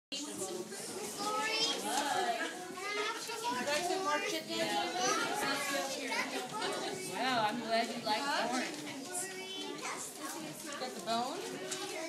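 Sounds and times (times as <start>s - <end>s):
young children chattering: 0.1s - 12.0s.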